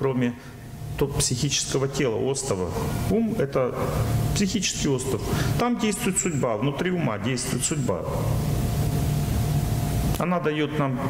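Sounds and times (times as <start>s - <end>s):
faint high whine: 0.0s - 11.0s
steady loud hiss: 0.0s - 11.0s.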